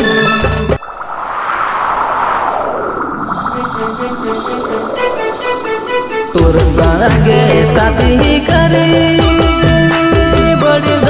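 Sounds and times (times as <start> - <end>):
aircraft-like rushing noise: 0.8 - 6.7.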